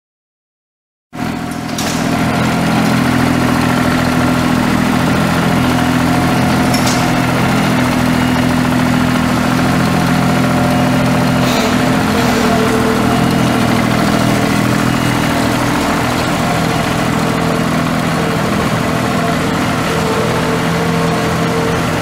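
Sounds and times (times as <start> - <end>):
diesel mower engine idling: 1.2 - 22.0.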